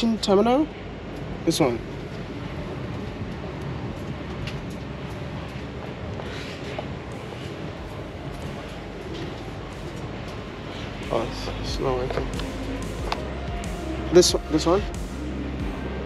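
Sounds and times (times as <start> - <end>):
low rumbling station ambience: 0.0 - 16.0.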